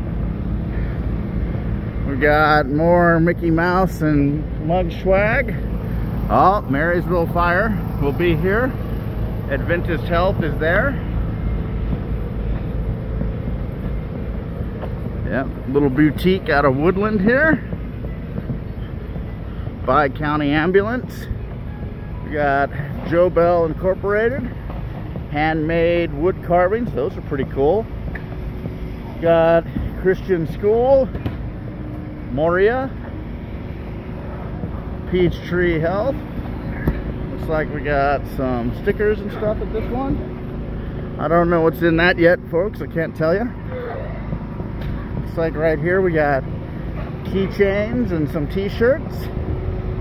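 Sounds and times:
steady low rumble: 0:00.0 - 0:50.0.

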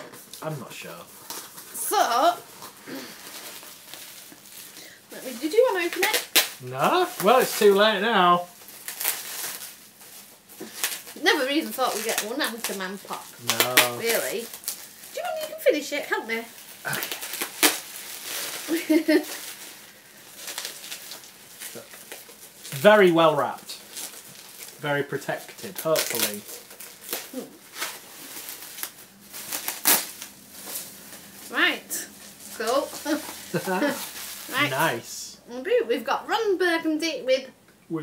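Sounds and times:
packaging rustling and crinkling: 0:00.0 - 0:35.1
man speaking: 0:00.4 - 0:01.1, 0:06.6 - 0:08.5, 0:13.4 - 0:14.1, 0:22.7 - 0:23.8, 0:24.8 - 0:26.4, 0:33.6 - 0:35.4
short voiced sound: 0:13.4 - 0:14.0, 0:34.5 - 0:35.1.

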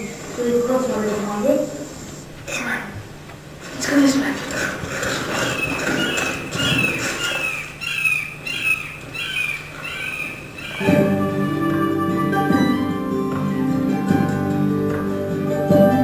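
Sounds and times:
bird calling: 0:04.5 - 0:12.2.

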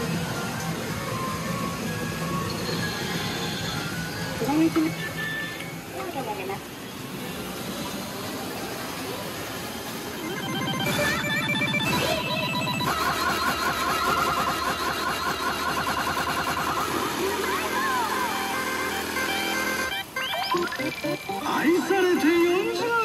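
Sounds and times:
electronic machine jingles and beeps: 0:09.8 - 0:23.0.

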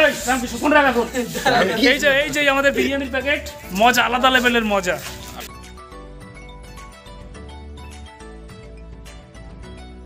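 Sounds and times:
men talking: 0:00.0 - 0:05.5.

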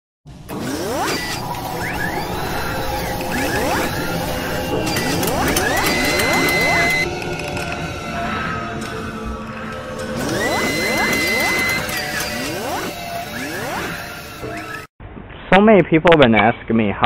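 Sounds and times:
high held tone: 0:00.5 - 0:14.9
rising sweeps: 0:00.5 - 0:14.9
clicks and ratcheting machinery: 0:10.0 - 0:14.9.

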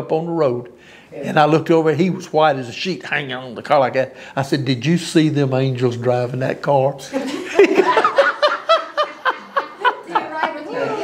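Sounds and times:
man laughing: 0:07.1 - 0:11.0.

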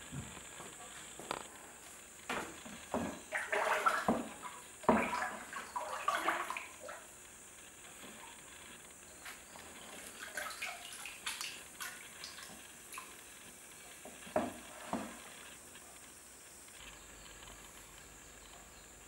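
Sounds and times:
glaze sloshing in bucket: 0:02.4 - 0:07.1, 0:09.6 - 0:13.2
drips falling into bucket: 0:03.0 - 0:07.0, 0:10.0 - 0:13.2
loud splashes: 0:03.3 - 0:04.2.

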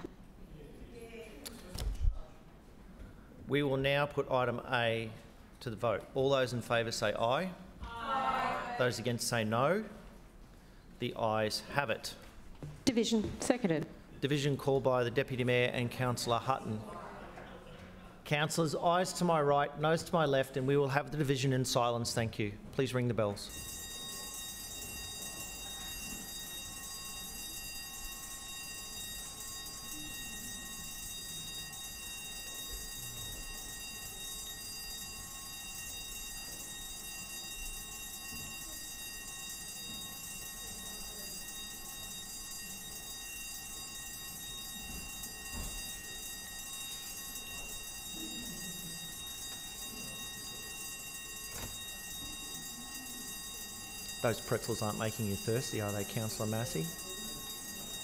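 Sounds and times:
faint murmur and movement: 0:09.8 - 0:11.2, 0:12.0 - 0:14.2, 0:16.2 - 0:19.5, 0:22.5 - 0:58.0
bells ringing steadily: 0:22.9 - 0:58.0.

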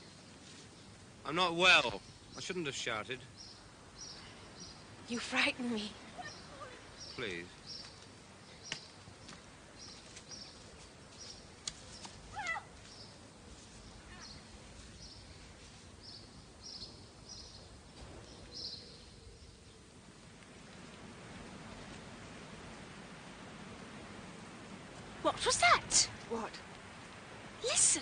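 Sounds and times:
bird chirps: 0:16.0 - 0:19.8.

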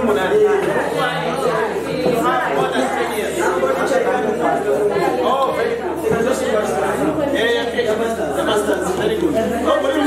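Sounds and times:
overlapping chatter: 0:00.0 - 0:10.0.

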